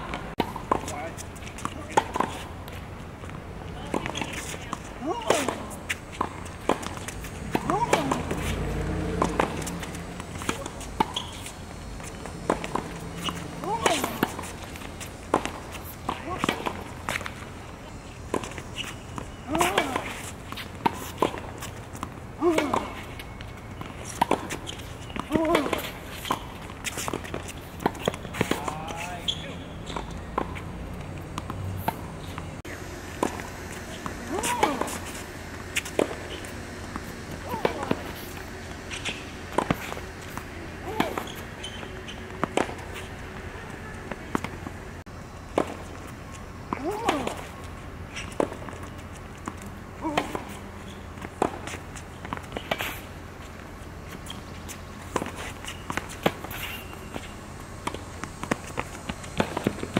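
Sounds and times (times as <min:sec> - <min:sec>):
racket striking tennis ball: 0:00.0 - 0:02.8, 0:03.8 - 0:30.6, 0:31.2 - 0:44.7, 0:46.7 - 0:53.1, 0:55.0 - 0:59.9
shoes moving on court: 0:00.0 - 0:59.9
ball bouncing on hard court: 0:03.8 - 0:17.2, 0:33.2 - 0:43.1.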